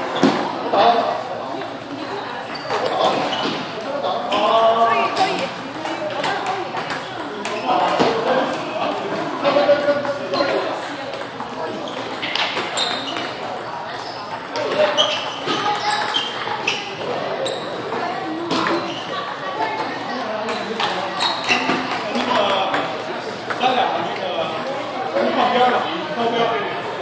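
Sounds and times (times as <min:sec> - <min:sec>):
people talking: 0:00.0 - 0:27.0.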